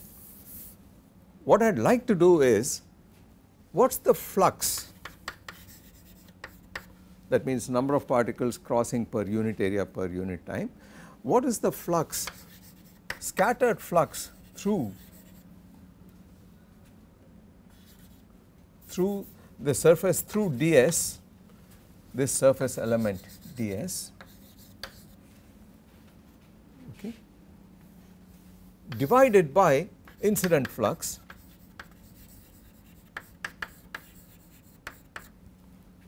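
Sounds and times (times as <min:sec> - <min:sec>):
chalk scratching on blackboard: 0:00.0 - 0:00.8, 0:04.6 - 0:06.9, 0:12.1 - 0:13.4, 0:14.0 - 0:15.5, 0:17.7 - 0:18.2, 0:22.4 - 0:25.2, 0:28.9 - 0:29.4, 0:30.1 - 0:35.4.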